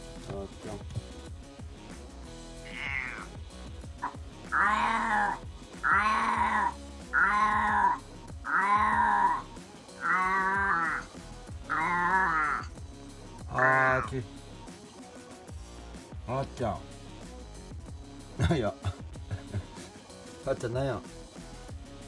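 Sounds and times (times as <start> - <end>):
cat meowing: 2.6 - 3.4, 4.0 - 12.7.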